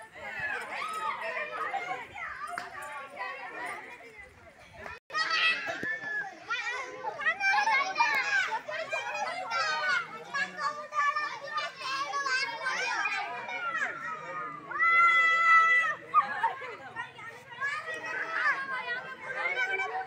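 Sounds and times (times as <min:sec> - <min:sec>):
children talking and calling out: 0:00.0 - 0:20.0.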